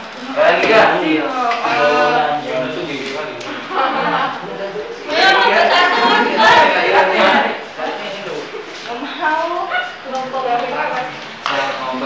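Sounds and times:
people talking indistinctly: 0.2s - 12.0s.

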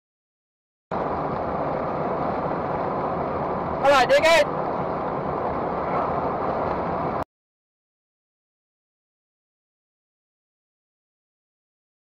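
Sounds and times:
car road and engine noise: 0.9s - 7.3s
loud voice speaking: 3.8s - 4.5s.

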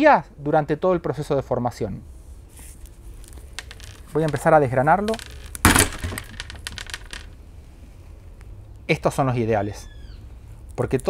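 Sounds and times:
corn kernels clicking onto wooden table: 5.1s - 7.3s.

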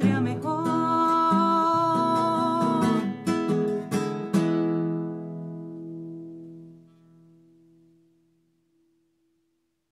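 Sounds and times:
woman singing: 0.0s - 3.4s
acoustic guitar strumming: 0.0s - 8.9s.

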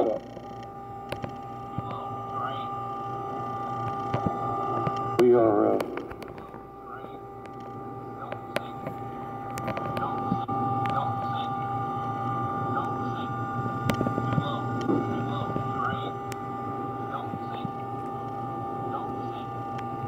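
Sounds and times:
cockpit hum: 0.0s - 20.0s
steady tones: 0.0s - 20.0s
clicks: 3.4s - 11.0s.

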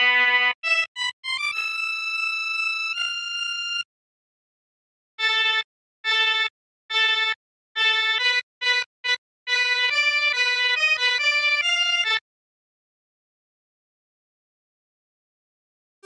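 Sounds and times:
synthesizer accordion tone notes: 5.2s - 12.2s.

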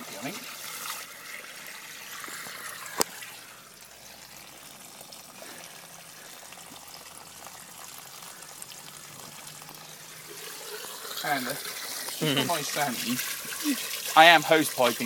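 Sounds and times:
water pouring from hose: 0.0s - 15.0s.

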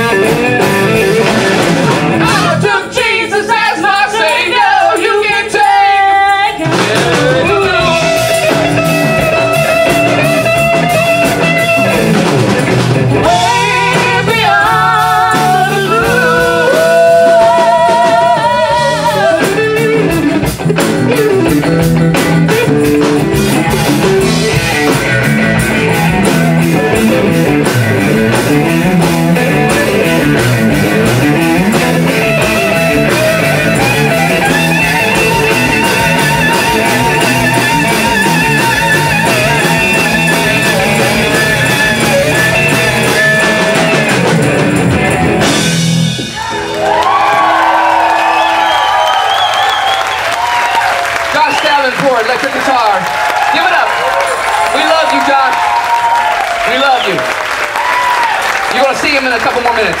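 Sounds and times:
drum kit: 0.0s - 60.0s
electric guitar: 0.0s - 60.0s
person singing: 2.2s - 9.7s, 13.2s - 20.2s.

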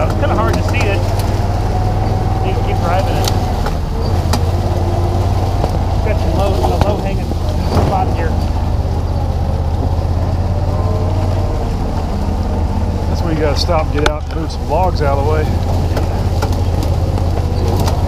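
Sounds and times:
utility vehicle engine running: 0.0s - 18.0s.

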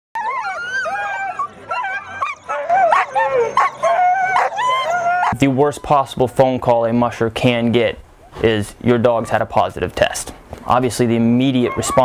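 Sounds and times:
sled dogs yelping and whining: 0.2s - 6.6s, 11.5s - 12.0s.

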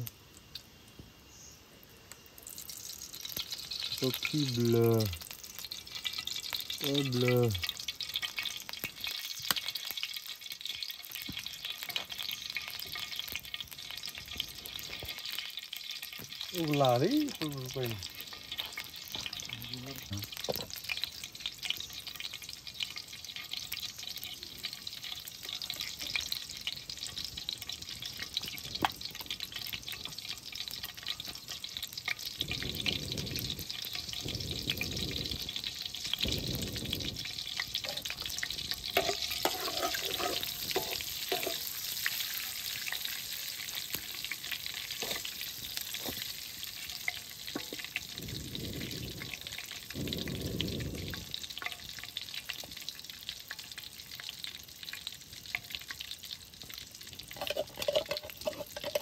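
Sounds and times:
hot oil sizzling in a wok: 0.0s - 59.0s
metal ladle stirring: 37.8s - 42.6s, 44.9s - 47.8s, 57.3s - 59.0s.

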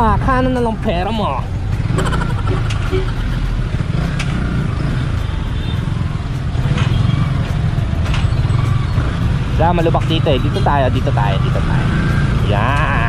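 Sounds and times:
motorcycle engine running: 0.0s - 13.0s.

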